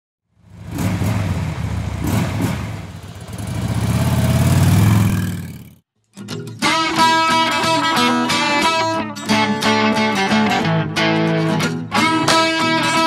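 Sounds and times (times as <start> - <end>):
motorcycle engine revving: 0.3 - 5.8.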